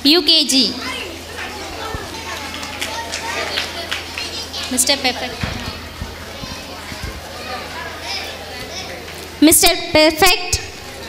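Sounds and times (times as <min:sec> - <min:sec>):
children chattering: 0:00.0 - 0:11.0
soft low thumps: 0:05.4 - 0:07.3.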